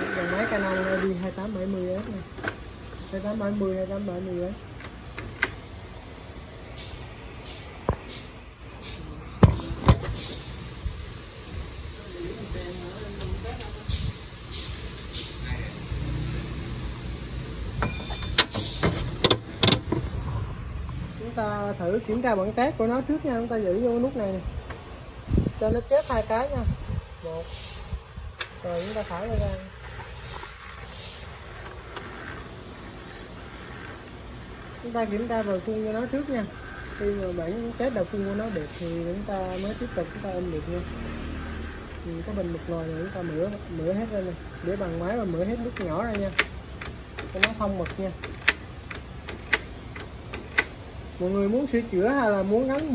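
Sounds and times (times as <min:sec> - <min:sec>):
hissy printer swells: 0:00.0 - 0:01.2, 0:28.6 - 0:37.4
inkjet printer running: 0:00.0 - 0:01.3
short high hisses: 0:13.9 - 0:15.5, 0:27.4 - 0:28.0, 0:30.2 - 0:31.4.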